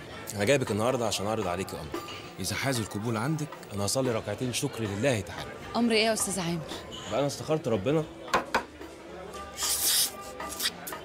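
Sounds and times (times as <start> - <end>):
man eating noisily: 9.5 - 11.0
hissing suck: 9.6 - 10.8.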